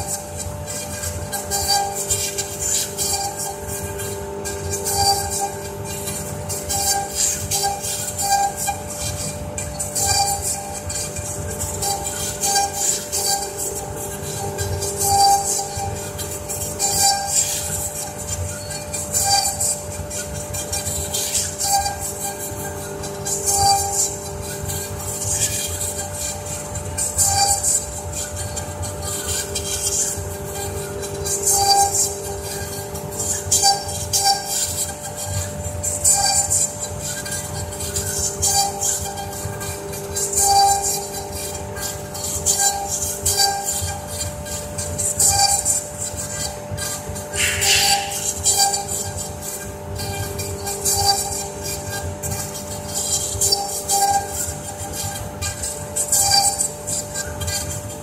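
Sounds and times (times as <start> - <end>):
router spindles whining: 45.6 - 51.9.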